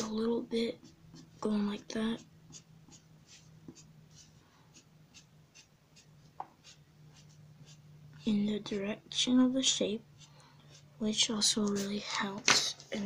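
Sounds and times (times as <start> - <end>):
steady low hum: 0.0 - 13.0
eraser rubbing on paper: 0.7 - 1.4, 2.1 - 7.9, 9.7 - 12.0.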